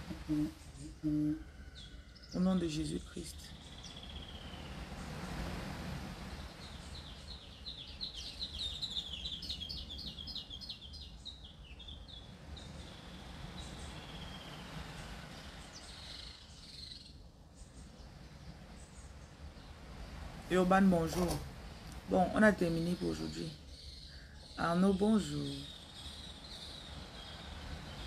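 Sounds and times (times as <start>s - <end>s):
bird chirping: 0.3s - 5.2s, 6.3s - 28.0s.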